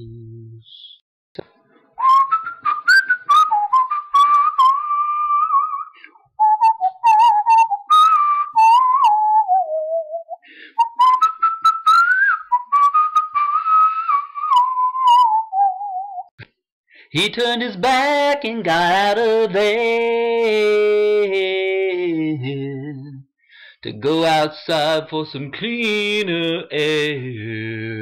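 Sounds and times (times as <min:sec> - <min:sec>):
person whistling a melody: 0:02.0 - 0:16.3.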